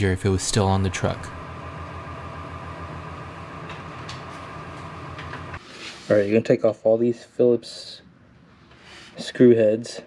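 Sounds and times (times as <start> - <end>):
machine hum with low throb: 0.0 - 5.6.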